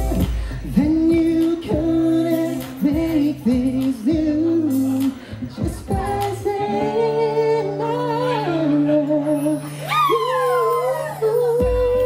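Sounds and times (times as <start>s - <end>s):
backing track: 0.0s - 12.0s
man singing with vibrato: 0.0s - 12.0s.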